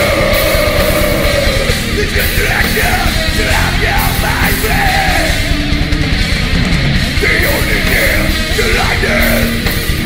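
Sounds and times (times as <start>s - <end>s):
singer yelling vocals: 0.0s - 5.6s, 7.2s - 9.7s
drums: 0.0s - 10.0s
electric guitars: 0.0s - 10.0s.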